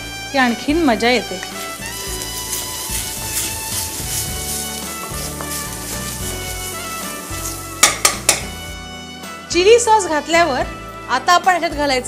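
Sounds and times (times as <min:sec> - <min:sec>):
vegetables sizzling in butter: 0:00.4 - 0:09.0
spatula stirring in a wok: 0:00.8 - 0:08.9
spatula clacking: 0:01.3 - 0:08.7.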